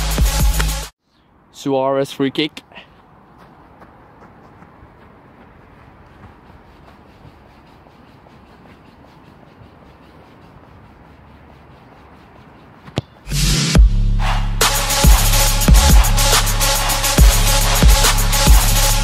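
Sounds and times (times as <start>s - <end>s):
electronic music with heavy bass: 0.0s - 0.9s, 13.3s - 19.0s.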